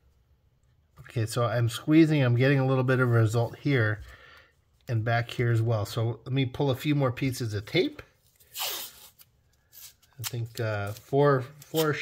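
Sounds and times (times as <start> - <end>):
tape ripping off roll: 8.4 - 10.4.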